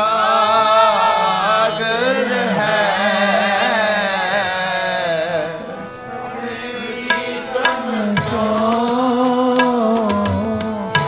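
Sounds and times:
harmonium chords: 0.0 - 11.0
men singing a hymn: 0.0 - 11.0.

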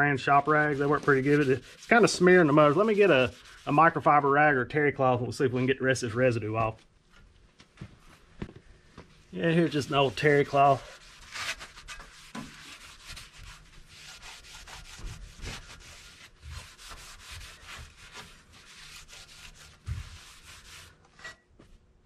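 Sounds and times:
rag wiping metal bumper: 0.2 - 4.1, 9.4 - 21.0.

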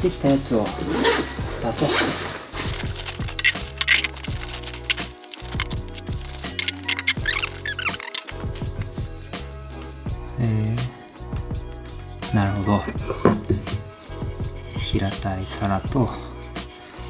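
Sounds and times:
background music with steady beat: 0.0 - 17.0
bubble wrap crinkling: 2.5 - 8.4.

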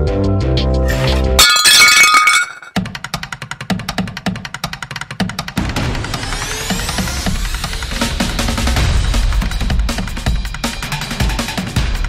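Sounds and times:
background music: 0.0 - 1.4
glass breaking: 0.9 - 2.8.

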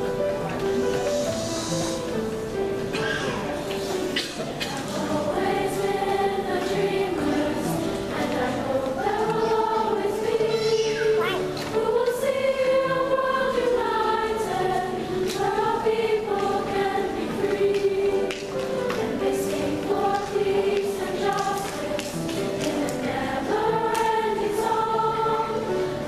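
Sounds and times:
girls' choir singing: 0.0 - 26.0
piano accompaniment: 0.0 - 26.0.

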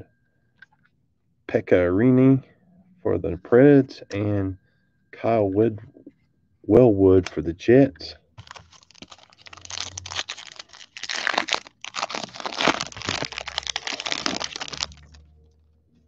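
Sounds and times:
foil wrapper tearing and crinkling: 8.4 - 15.2.

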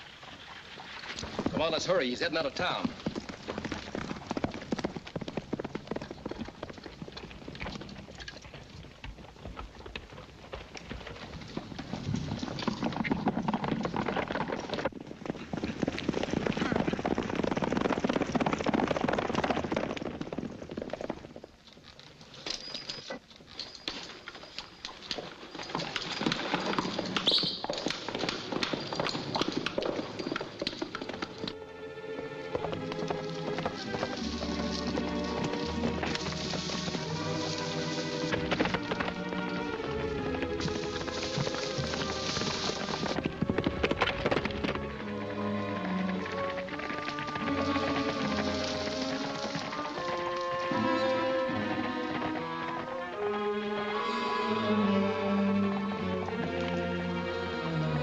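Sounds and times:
horses' hoofbeats: 0.0 - 58.0
background film music: 30.9 - 58.0.

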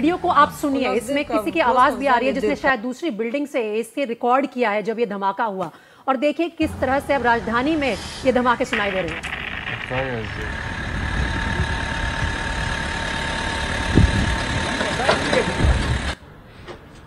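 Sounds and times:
loud steady rumbling: 6.6 - 16.2
thin steady whine: 6.6 - 16.2
voice fragments: 8.2 - 10.8.

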